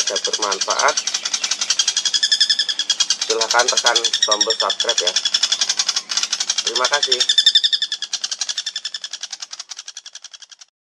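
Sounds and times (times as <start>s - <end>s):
young woodpecker calling: 0.0s - 10.7s.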